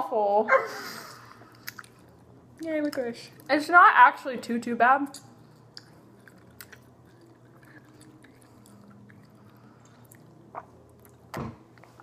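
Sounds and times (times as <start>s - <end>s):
chewing jelly beans: 1.4s - 3.6s, 5.1s - 12.0s.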